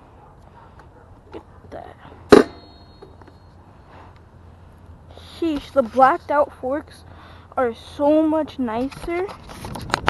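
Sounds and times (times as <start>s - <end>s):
low steady hum: 0.0s - 9.2s
metallic ring: 2.3s - 3.6s.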